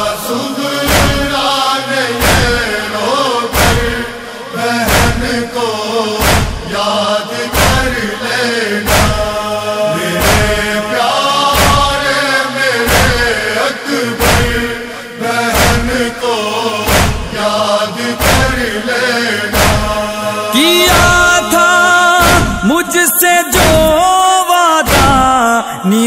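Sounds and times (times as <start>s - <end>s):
wordless chanted vocals: 0.0s - 26.0s
steady percussive beat: 3.5s - 4.1s, 4.8s - 5.4s, 6.2s - 6.7s, 8.9s - 9.4s, 10.2s - 10.8s, 11.6s - 12.0s, 16.8s - 17.4s, 18.2s - 18.8s, 19.5s - 20.2s, 22.2s - 22.8s.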